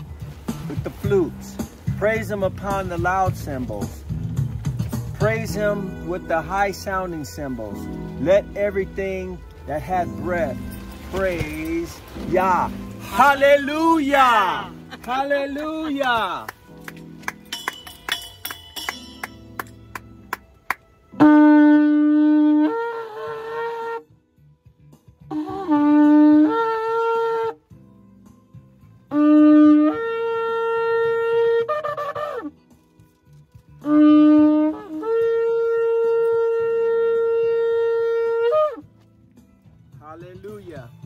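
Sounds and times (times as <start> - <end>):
shofar horn blown: 5.2 - 14.9, 20.7 - 24.2, 25.2 - 27.7, 29.0 - 32.6, 33.8 - 39.0.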